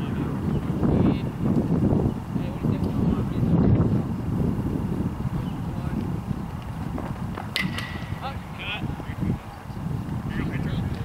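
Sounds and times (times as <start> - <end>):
wind rumble on microphone: 0.0 - 11.0
baseball sharp cracks: 7.4 - 8.3.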